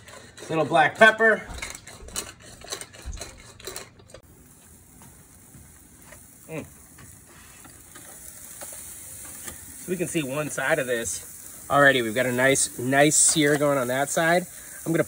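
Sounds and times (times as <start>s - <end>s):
pepper mill grinding: 0.0s - 15.0s
steaks sizzling on a grill: 4.2s - 15.0s.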